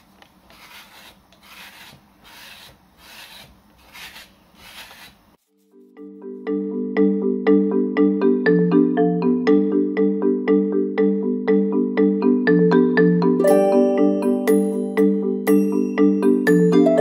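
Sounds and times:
metal scraper scraping clay: 0.4s - 5.6s
marimba-like mallet tune: 5.9s - 17.0s.

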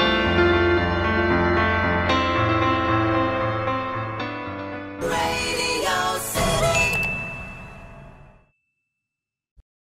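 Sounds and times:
bright bell-like ding: 6.5s - 9.0s.

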